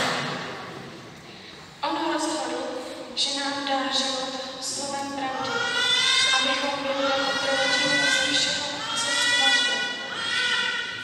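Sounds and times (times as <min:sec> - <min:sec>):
woman chanting: 0:03.3 - 0:10.1.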